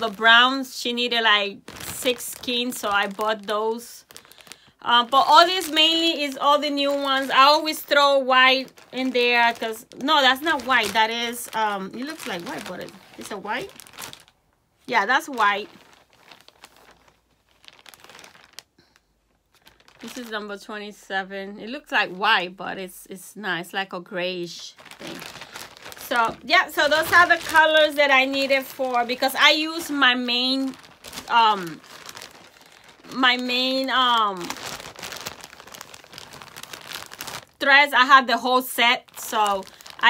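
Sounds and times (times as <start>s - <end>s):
thread crinkling and rustling: 0.0s - 20.7s, 24.4s - 40.0s.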